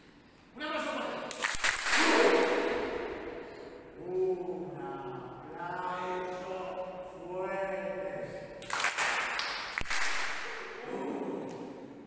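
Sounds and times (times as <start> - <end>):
sharp claps: 1.3 - 3.2, 8.6 - 10.8
person calling out: 4.0 - 6.0.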